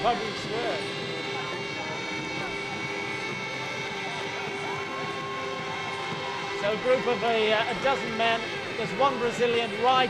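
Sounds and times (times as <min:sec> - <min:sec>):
vehicle engines droning: 0:00.0 - 0:10.0.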